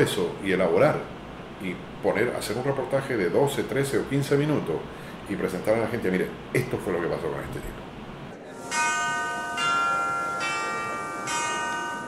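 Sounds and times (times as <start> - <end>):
bell-like chime notes: 8.6 - 12.0.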